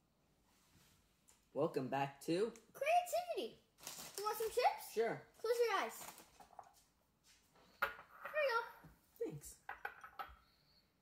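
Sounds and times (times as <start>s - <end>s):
boy speaking: 2.7s - 6.2s, 8.3s - 9.6s.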